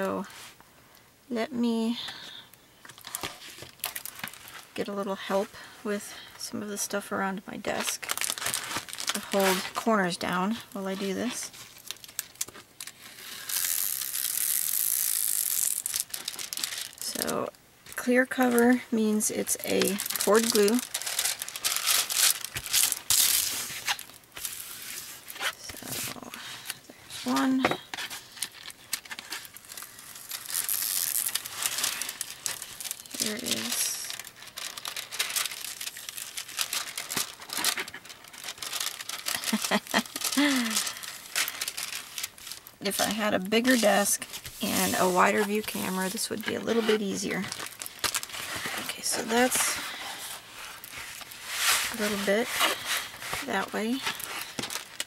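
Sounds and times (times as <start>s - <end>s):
plastic film peeling crackle: 2.0s - 4.9s, 7.7s - 55.0s
plastic crinkling and clicking: 2.8s - 4.7s, 7.7s - 9.8s, 11.0s - 18.8s, 19.4s - 24.6s, 25.2s - 55.0s.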